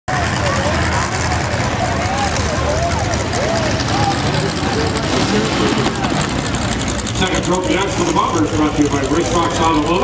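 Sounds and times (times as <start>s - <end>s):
stock car engines rumbling: 0.1s - 10.0s.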